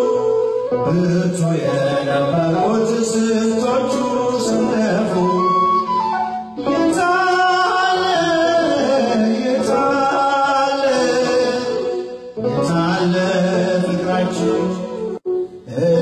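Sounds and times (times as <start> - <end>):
instrumental accompaniment: 0.0 - 16.0
man singing hymn into microphone: 0.0 - 16.0.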